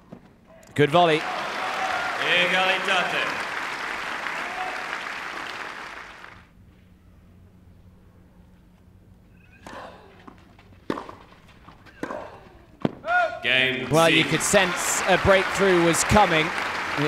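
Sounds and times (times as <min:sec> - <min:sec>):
crowd applause: 0:01.0 - 0:06.5, 0:13.6 - 0:17.0
tennis ball bouncing on clay: 0:09.6 - 0:13.0.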